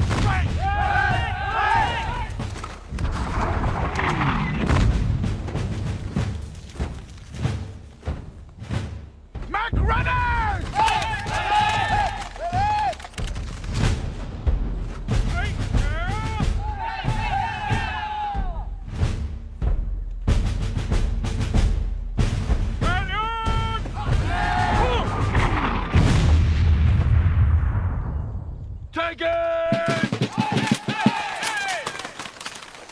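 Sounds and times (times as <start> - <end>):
heavy booms: 0.0 - 9.1, 24.2 - 29.0
men yelling: 0.2 - 2.4, 9.5 - 13.1, 15.4 - 18.7, 22.9 - 25.3, 29.0 - 32.1.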